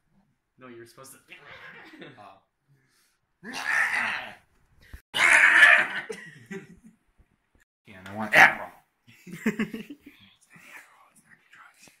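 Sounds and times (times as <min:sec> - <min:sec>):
faint whispering: 0:10.0 - 0:12.0.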